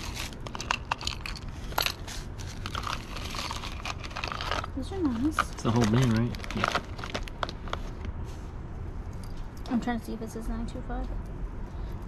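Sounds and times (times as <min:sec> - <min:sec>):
plastic bag crinkling: 0:02.5 - 0:07.8.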